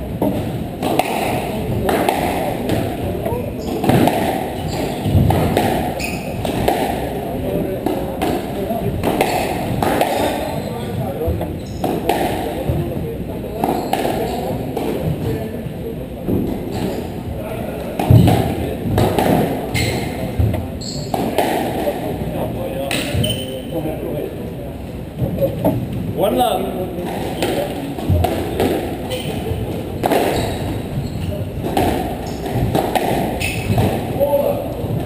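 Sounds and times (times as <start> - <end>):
murmur of voices: 0.0 - 35.0
squash ball knocks: 0.2 - 13.0, 17.9 - 22.1, 27.0 - 34.2.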